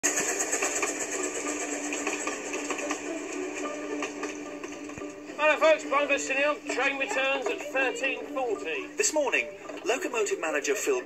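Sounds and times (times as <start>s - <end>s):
steam train clattering past: 0.0s - 9.3s.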